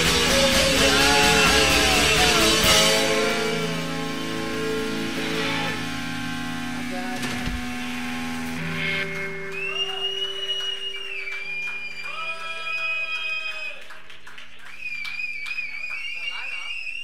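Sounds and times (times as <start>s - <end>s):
rock band final hit: 0.0s - 10.2s
electric guitars ringing out: 0.0s - 12.1s
scattered claps: 9.0s - 16.8s.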